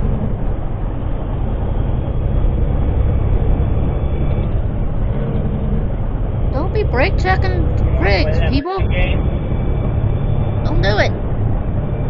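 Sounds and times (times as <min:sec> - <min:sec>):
road rumble: 0:00.0 - 0:12.0
truck engine drone: 0:00.0 - 0:12.0.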